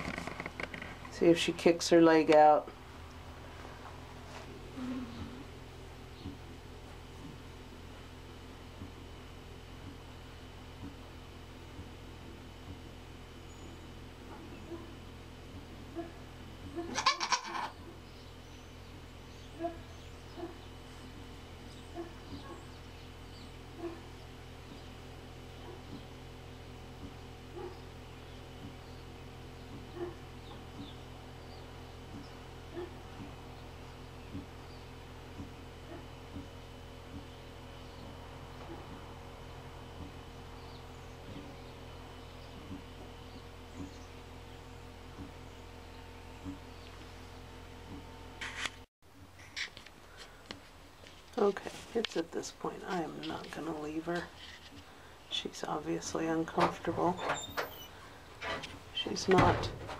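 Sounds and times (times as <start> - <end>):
steady low hum: 0.0 - 59.9
goat bleating: 16.8 - 17.8.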